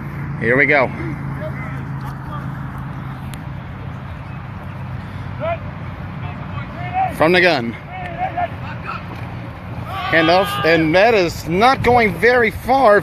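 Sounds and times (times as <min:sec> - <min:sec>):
distant shouts of players: 0:05.2 - 0:11.4.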